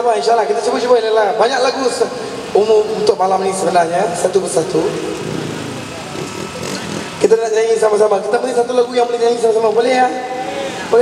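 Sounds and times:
small engine running: 4.4 - 11.0
crowd chatter: 5.2 - 7.3, 10.1 - 11.0.

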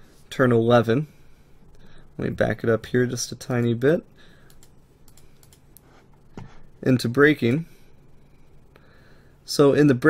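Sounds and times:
computer keyboard clicking: 4.4 - 5.6.

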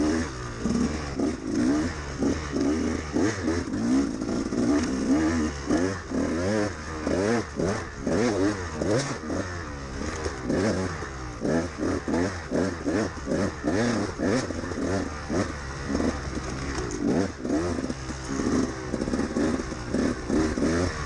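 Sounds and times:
two-stroke engine revving: 0.0 - 21.0.

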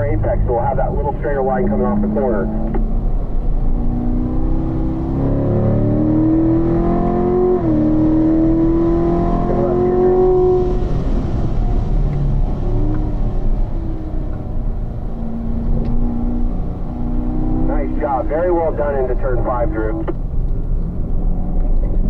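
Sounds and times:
car engine revving: 0.0 - 22.0.

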